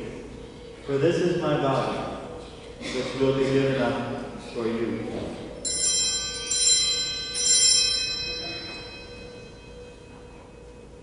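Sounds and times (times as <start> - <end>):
altar bells jangling: 5.6 - 11.0.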